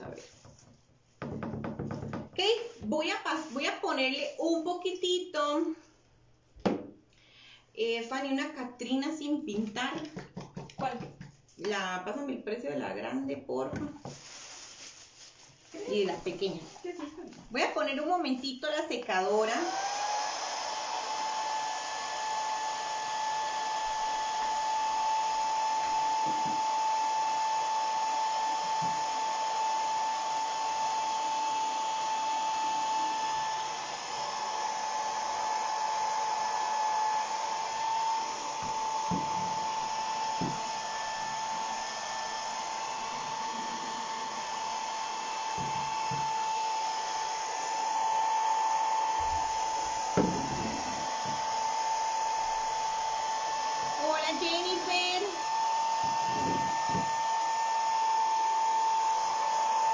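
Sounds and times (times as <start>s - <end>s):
hair dryer running: 15.8s - 59.9s.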